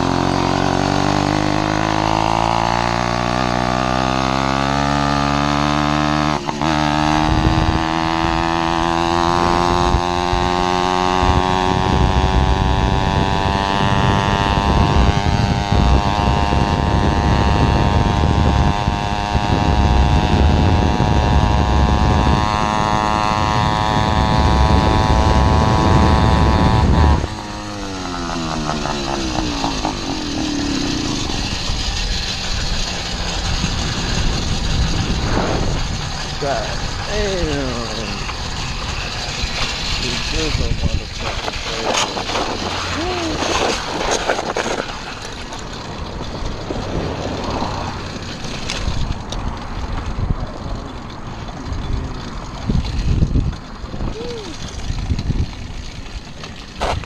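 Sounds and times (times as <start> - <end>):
two-stroke engine running: 0.0 - 57.0
wind rumble on microphone: 6.2 - 57.0.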